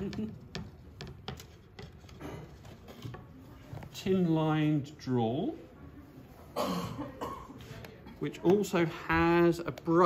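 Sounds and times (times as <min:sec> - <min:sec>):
soft handling noise: 0:00.0 - 0:04.6.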